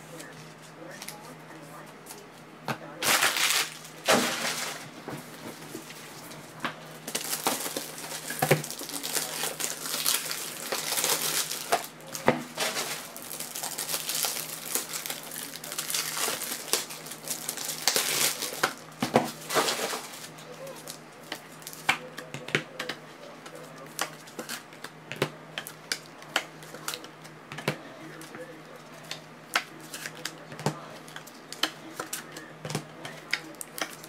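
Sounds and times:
foil wrappers crinkling: 3.0 - 5.0, 7.0 - 21.9, 29.0 - 32.3.

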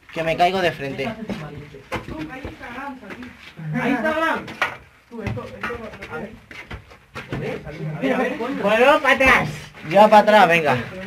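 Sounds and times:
scuffs and knocks: 0.0 - 3.6, 4.4 - 11.0
men talking and calling: 0.0 - 11.0.

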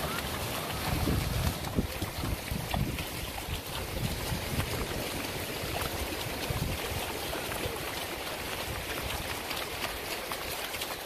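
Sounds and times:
wind buffeting microphone: 0.0 - 10.1
hooves splashing in water: 0.0 - 11.0
surf washing: 0.0 - 11.0.

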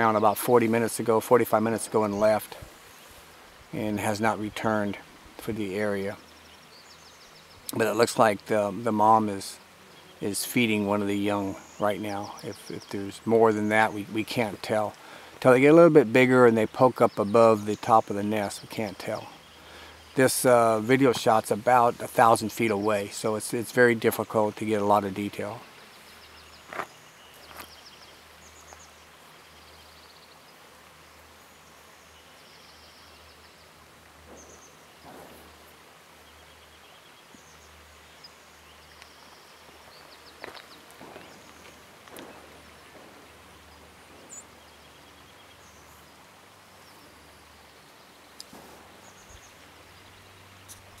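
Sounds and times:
faint steady hiss and hum: 0.0 - 51.0
small birds chirping: 0.0 - 51.0.

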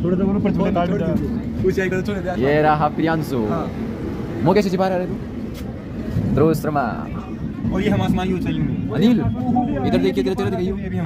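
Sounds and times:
train coach running noise: 1.0 - 10.6.

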